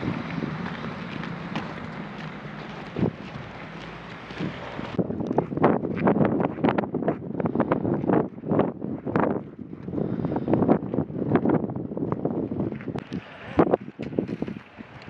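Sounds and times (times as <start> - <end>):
footsteps crunching on gravel: 0.0 - 9.5
wind on microphone: 0.0 - 15.0.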